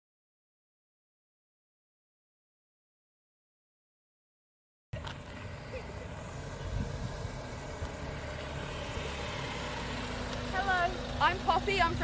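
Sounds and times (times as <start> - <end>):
car engine rumbling: 5.0 - 12.0.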